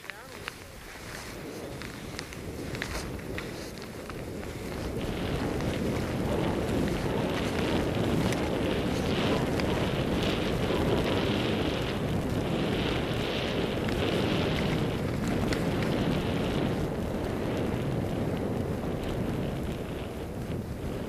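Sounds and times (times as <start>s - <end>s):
skis hissing over snow: 0.0s - 16.9s
wind rushing over microphone: 0.0s - 21.0s.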